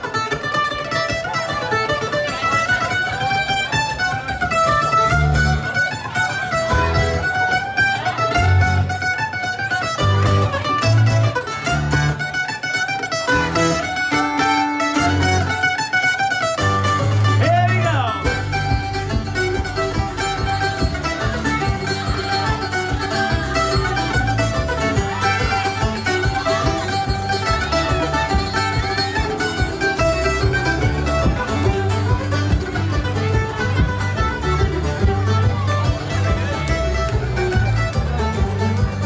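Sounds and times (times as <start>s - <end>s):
bass guitar: 0.0s - 39.0s
picked banjo melody: 0.0s - 39.0s
strummed acoustic guitar: 0.0s - 39.0s.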